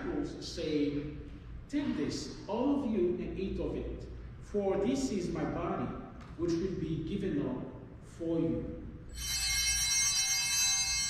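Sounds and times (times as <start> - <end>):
altar bells ringing: 9.1 - 11.0.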